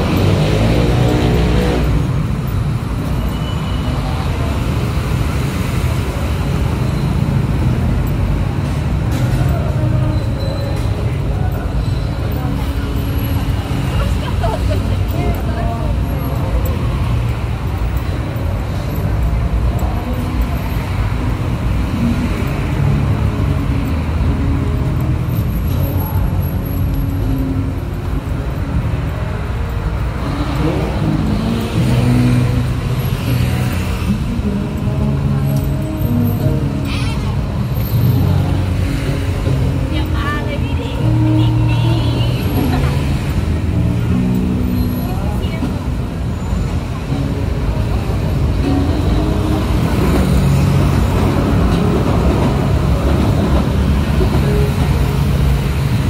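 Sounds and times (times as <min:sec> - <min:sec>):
chatter of passersby: 0:00.0 - 0:56.0
traffic noise: 0:00.0 - 0:56.0.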